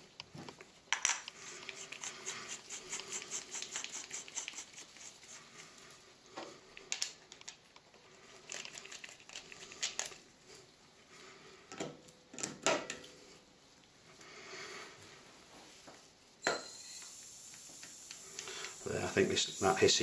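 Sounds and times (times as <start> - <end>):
small metal parts clicking: 6.8 - 10.2.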